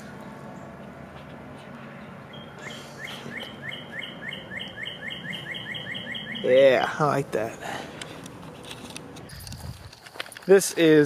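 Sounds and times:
low background hum: 0.0s - 11.0s
songbird singing repeated notes: 2.0s - 7.0s.

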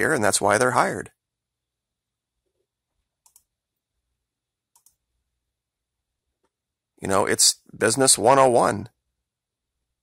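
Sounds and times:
computer mouse double click: 3.2s - 3.5s, 4.7s - 5.0s.

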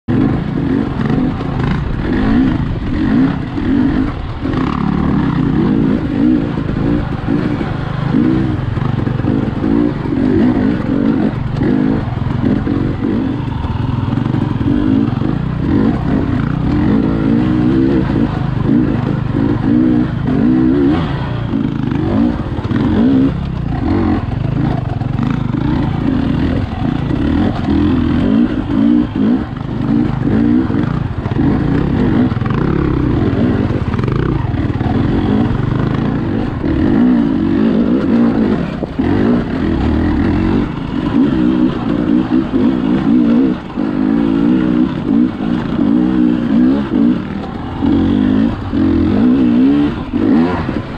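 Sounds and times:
dirt bike engine revving: 0.1s - 50.9s.

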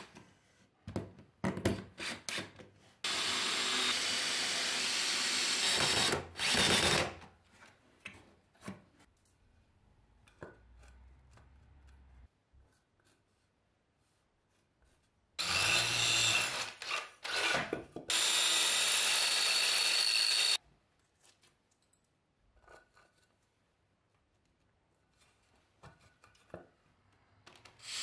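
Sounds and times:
cordless drill boring into wall: 3.0s - 7.2s, 15.4s - 20.6s, 27.8s - 28.0s.

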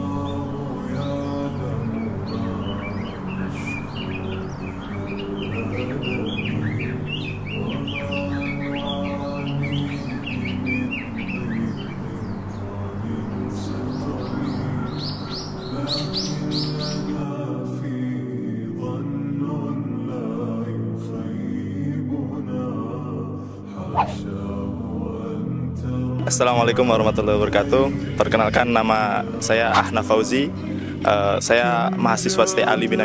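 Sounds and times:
birds chirping: 0.0s - 17.2s, 23.8s - 24.2s, 26.3s - 33.0s
music of long sustained tones: 0.0s - 33.0s.

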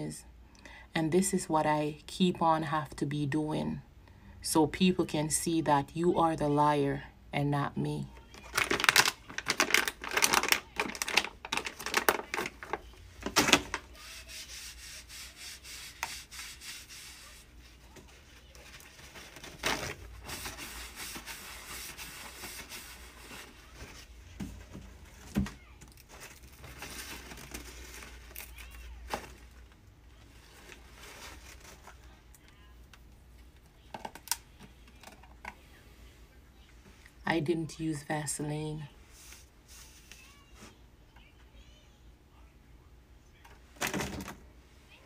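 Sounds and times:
paper towel rubbing skin: 13.9s - 18.6s, 20.0s - 24.1s.

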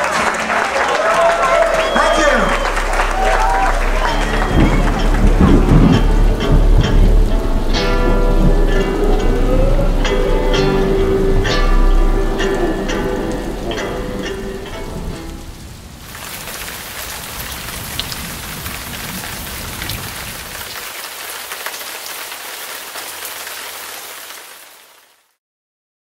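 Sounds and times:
band music: 0.0s - 15.7s
steady rain falling: 0.0s - 25.4s
rain drop ticks: 1.8s - 25.1s.

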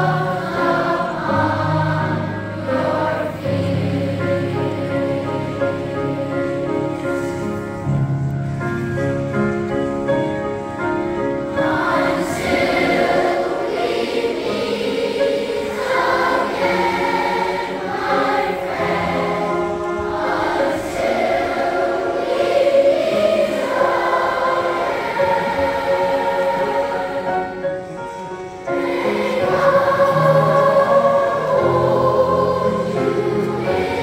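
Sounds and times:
children's choir singing: 0.0s - 8.0s, 10.0s - 34.0s.

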